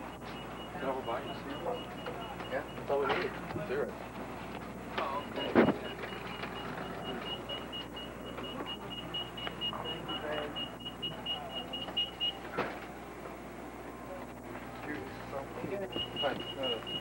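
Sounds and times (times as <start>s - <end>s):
murmur of background voices: 0.4s - 17.0s.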